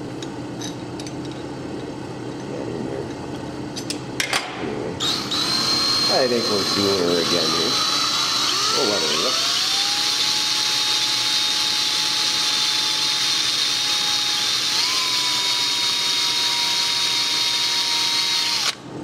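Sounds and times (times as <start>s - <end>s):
cordless drill running: 5.0s - 18.8s.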